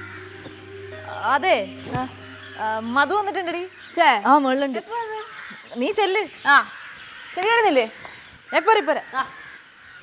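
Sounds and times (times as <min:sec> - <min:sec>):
women talking: 0:01.0 - 0:09.4.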